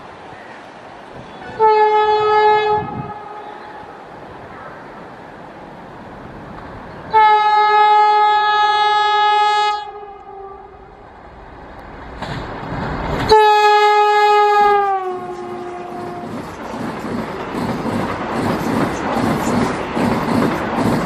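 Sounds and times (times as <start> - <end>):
rush of train passing: 0.0 - 21.0
electric train horn blasts: 1.2 - 4.0, 7.1 - 10.9, 13.3 - 16.4.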